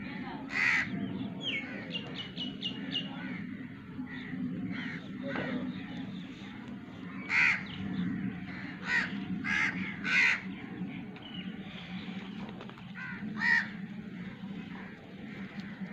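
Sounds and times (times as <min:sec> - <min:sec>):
steady low hum: 0:00.0 - 0:15.9
harsh animal calls: 0:00.4 - 0:05.7, 0:07.0 - 0:10.6, 0:13.0 - 0:15.9.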